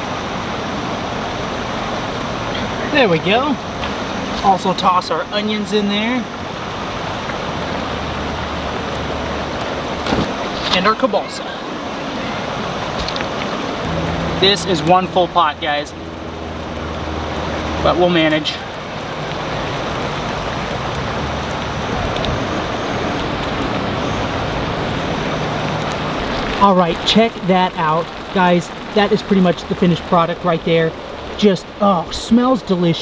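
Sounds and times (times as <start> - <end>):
water boiling hard in a pan: 1.2 - 11.4, 12.2 - 24.2, 25.6 - 33.0.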